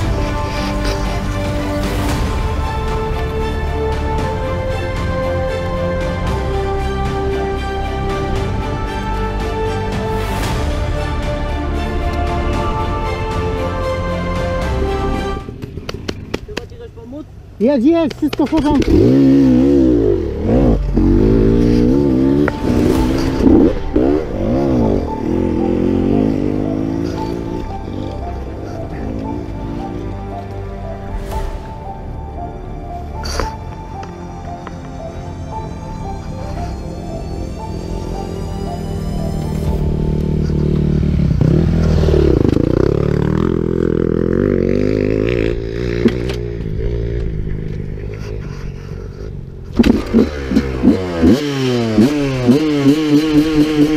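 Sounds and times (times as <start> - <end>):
two-stroke motorbike engine revving: 18.6 - 30.2, 39.6 - 48.2, 49.7 - 53.9.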